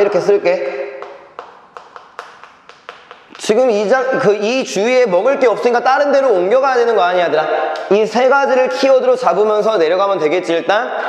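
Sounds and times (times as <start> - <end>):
chalk tapping on a chalkboard: 1.0 - 3.5.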